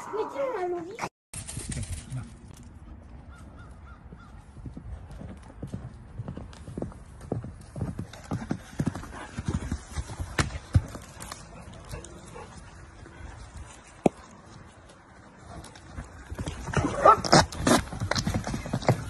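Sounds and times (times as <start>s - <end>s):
horse hooves on dirt path: 1.4s - 19.0s.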